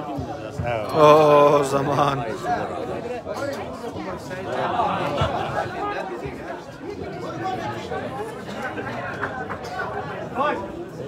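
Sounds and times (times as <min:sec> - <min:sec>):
spectators chattering and calling out: 0:00.0 - 0:11.0.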